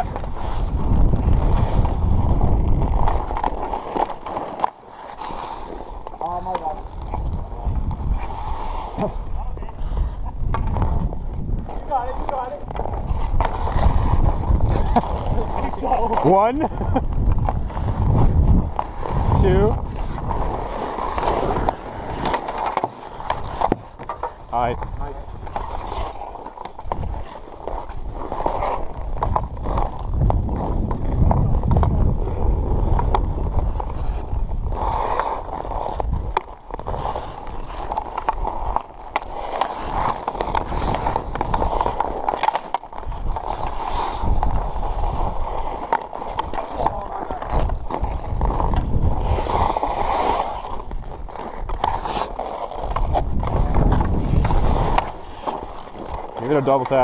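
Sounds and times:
wind rumble on microphone: 0:00.0 - 0:03.7, 0:06.0 - 0:22.3, 0:23.3 - 0:39.2, 0:42.9 - 0:56.2
skate blades scraping ice: 0:00.0 - 0:57.0
hockey sticks clacking on puck: 0:02.8 - 0:07.5, 0:11.7 - 0:16.6, 0:18.7 - 0:32.0, 0:34.7 - 0:57.0.

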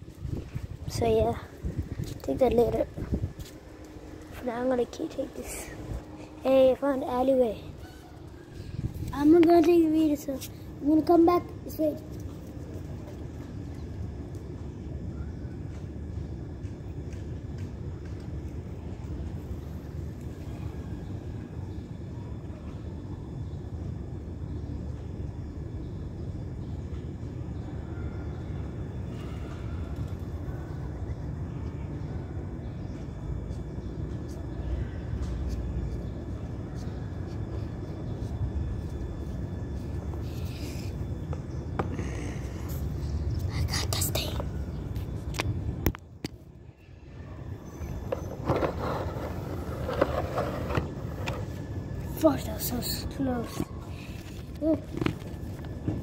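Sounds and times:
steady low rumble: 0:00.0 - 0:50.0.

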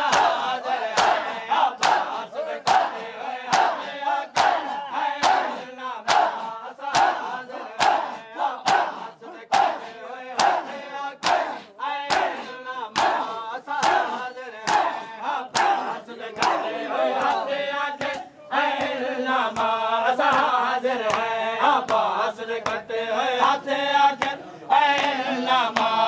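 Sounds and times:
hand slaps on bare chests: 0:00.0 - 0:17.4, 0:18.0 - 0:22.8, 0:24.1 - 0:26.0
men shouting a chant: 0:00.0 - 0:26.0.

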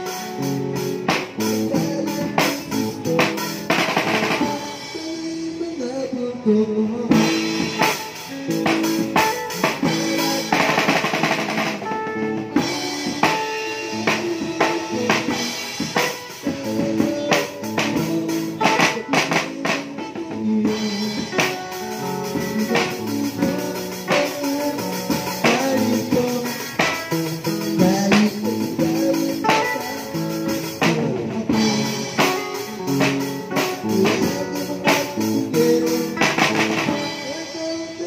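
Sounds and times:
drum kit beat: 0:00.0 - 0:05.6, 0:07.1 - 0:38.0
guitar-led music: 0:00.0 - 0:38.0.

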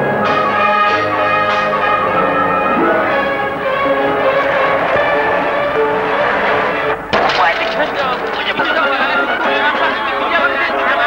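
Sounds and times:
film soundtrack music: 0:00.0 - 0:07.1.

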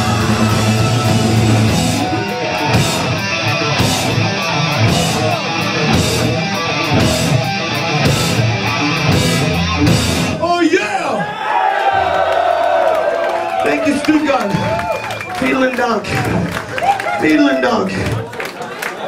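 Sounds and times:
crowd shouting and whooping: 0:00.0 - 0:06.1, 0:11.1 - 0:19.0
loud rock band playing: 0:00.0 - 0:10.6.

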